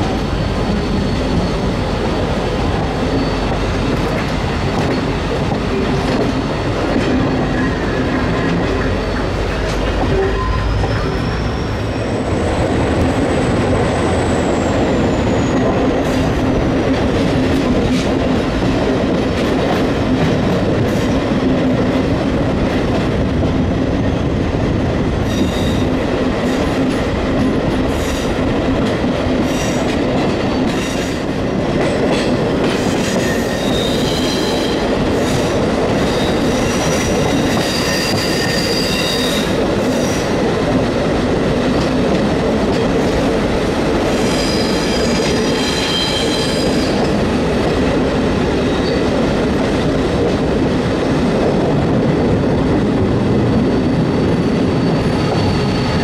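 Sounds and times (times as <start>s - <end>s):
train wheels clattering on rails: 0.0s - 56.0s
wheels squealing high-pitched: 10.1s - 12.6s.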